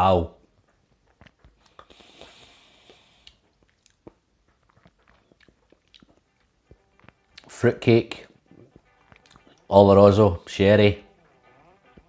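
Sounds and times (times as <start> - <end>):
wet mouth clicks and lip smacks: 1.1 - 7.5, 9.1 - 9.5
soft breath hiss: 1.4 - 4.3.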